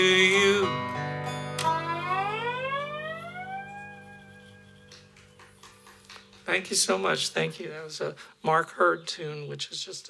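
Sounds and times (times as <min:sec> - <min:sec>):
slide guitar note sliding upward: 0:01.5 - 0:04.8.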